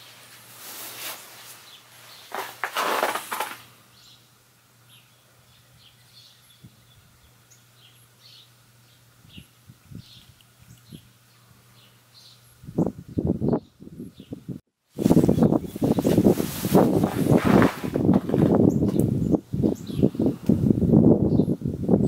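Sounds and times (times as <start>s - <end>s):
wind buffeting microphone: 9.2s - 11.1s, 12.6s - 22.0s.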